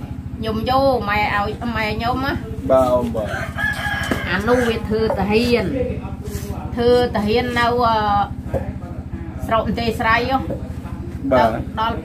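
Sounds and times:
rooster crowing: 0:03.2 - 0:05.5.

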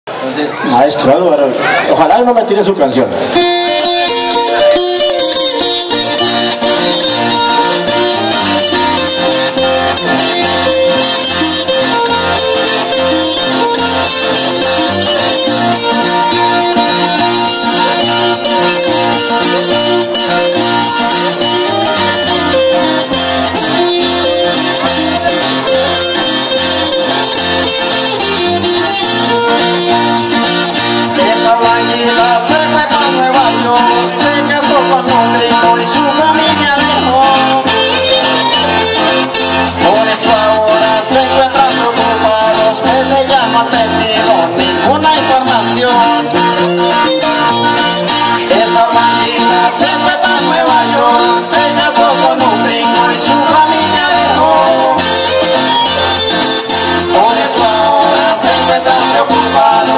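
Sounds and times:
strummed string instruments and guitar: 0:00.1 - 0:59.9.

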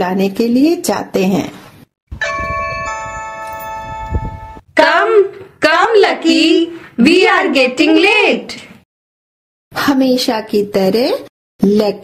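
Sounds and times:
two-note doorbell chime: 0:02.2 - 0:04.7.

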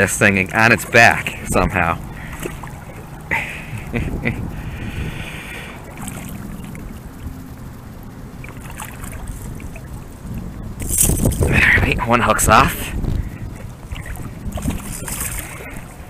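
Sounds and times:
steady low water rush: 0:00.0 - 0:16.0
water splashing and sloshing: 0:00.0 - 0:16.0
person laughing: 0:03.3 - 0:04.6.

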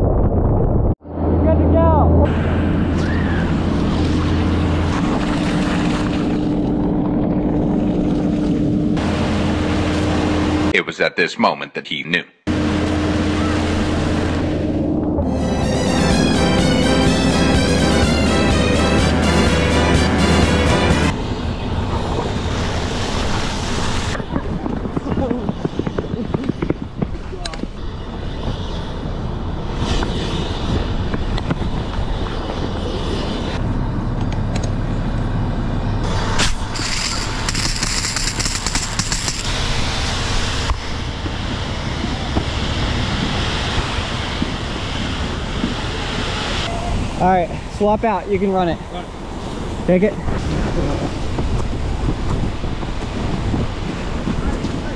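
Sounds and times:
music: 0:15.2 - 0:21.1
water spraying from fire hose: 0:21.2 - 0:26.5, 0:36.0 - 0:54.9.

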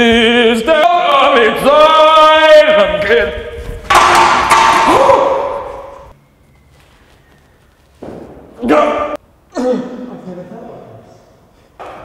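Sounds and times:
loud crash ringing: 0:03.9 - 0:06.1.

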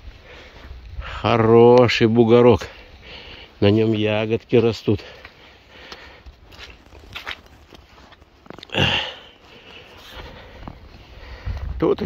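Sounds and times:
faint rustles: 0:02.7 - 0:11.9
footsteps: 0:04.2 - 0:12.0.

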